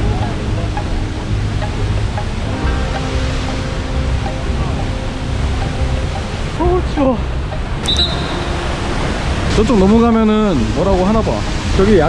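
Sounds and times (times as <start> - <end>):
soft background music: 0.0 - 12.0
waterfall rushing: 0.0 - 12.0.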